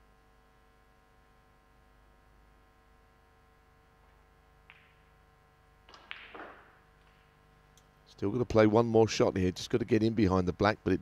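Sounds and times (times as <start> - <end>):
balls clacking together: 4.0 - 7.4
cue tip striking ball: 4.1 - 5.2, 5.8 - 7.4.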